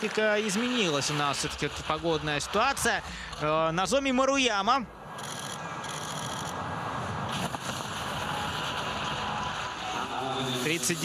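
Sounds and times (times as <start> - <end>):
skis sliding on snow: 7.3 - 11.0.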